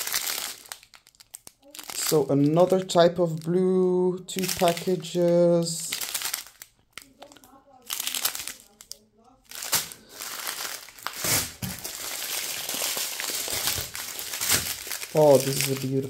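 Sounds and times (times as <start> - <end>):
plastic bags crinkling: 0.0 - 16.0.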